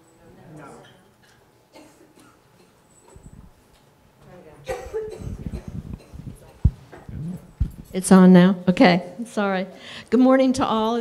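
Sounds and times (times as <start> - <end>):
microphone handling thumps: 4.8 - 8.2.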